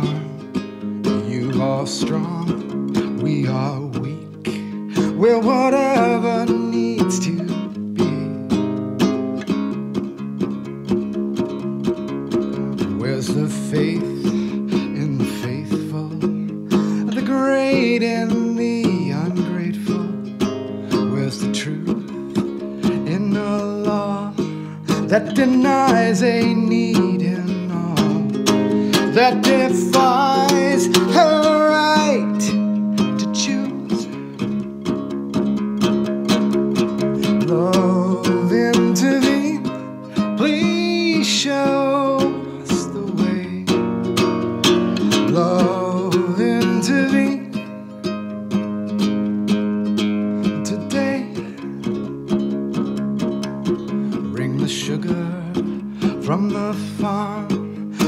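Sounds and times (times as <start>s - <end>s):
ukulele strumming and picking: 0.0s - 58.0s.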